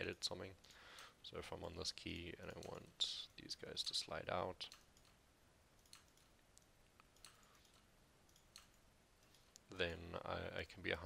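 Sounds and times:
computer mouse clicks: 4.6s - 5.2s, 5.8s - 10.0s.

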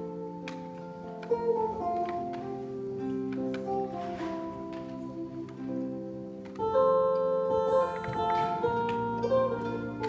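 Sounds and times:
electric guitar: 0.0s - 10.0s.

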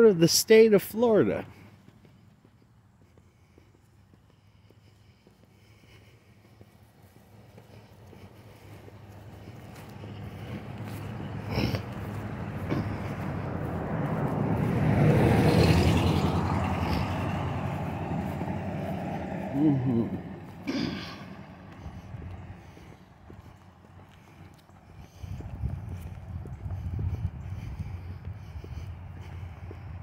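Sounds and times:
vehicle engine and tyre noise: 0.0s - 30.0s.

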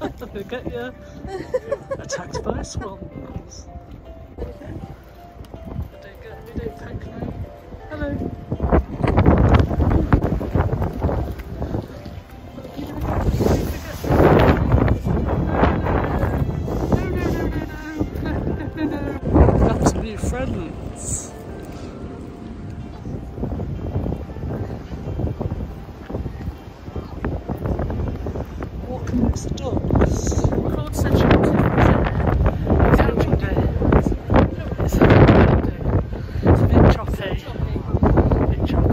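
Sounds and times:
wind buffeting microphone: 0.0s - 38.9s.

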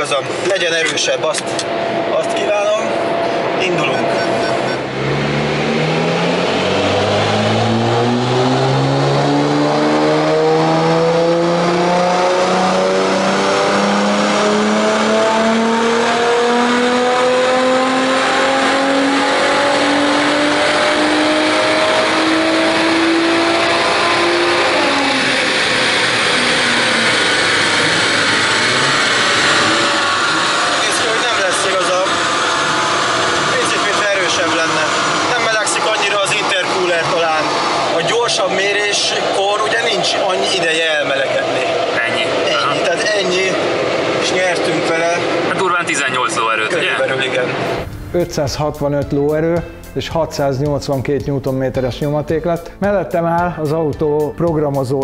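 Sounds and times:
car engine revving on dynamometer: 0.0s - 48.2s.

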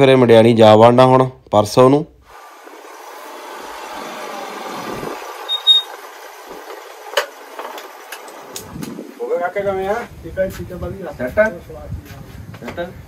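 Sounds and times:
motor scooter engine: 2.3s - 8.9s
brief high squeak: 5.5s - 6.0s.

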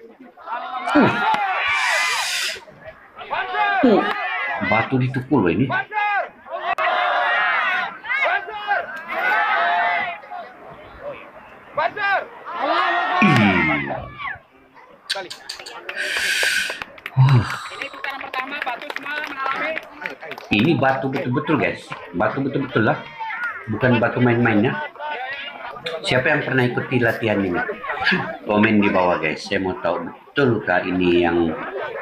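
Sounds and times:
excited voices of onlookers: 0.3s - 5.0s, 5.7s - 32.0s
short hissing burst: 1.7s - 2.6s, 16.0s - 16.8s.

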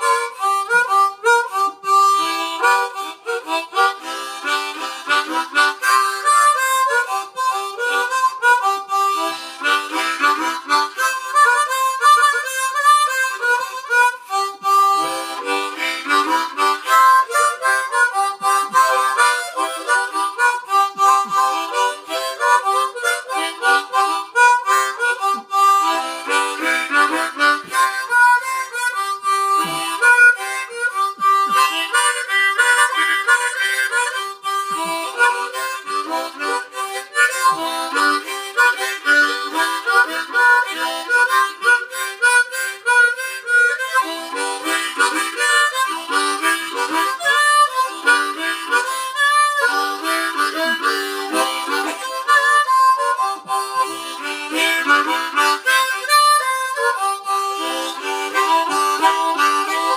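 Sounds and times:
blues harmonica: 0.0s - 59.9s.

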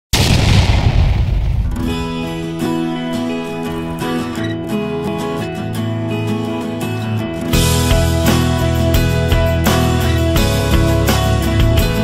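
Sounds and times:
rumbling boom effect: 0.1s - 3.1s
music with guitar: 1.7s - 12.0s.

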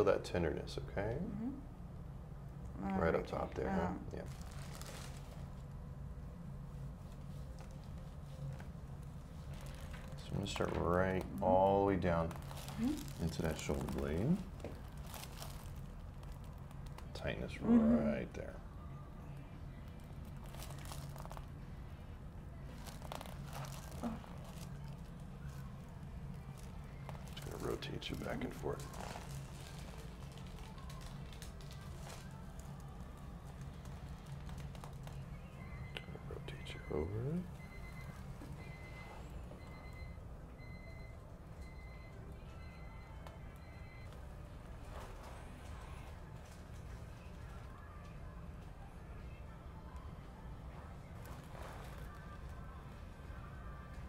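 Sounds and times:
low steady hum: 0.0s - 54.0s
gloved hands rustling: 22.7s - 25.8s
faint high electronic beep: 35.4s - 44.2s.

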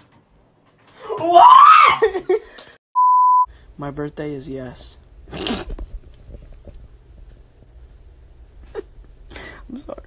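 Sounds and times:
young man yelling: 1.0s - 2.2s
censor bleep: 3.0s - 3.5s.

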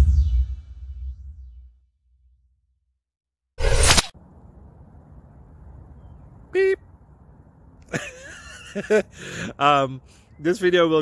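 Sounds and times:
low outdoor rumble: 4.2s - 8.9s.

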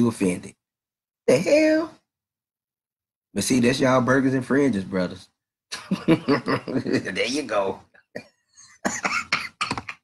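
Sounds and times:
man laughing: 5.8s - 7.5s.

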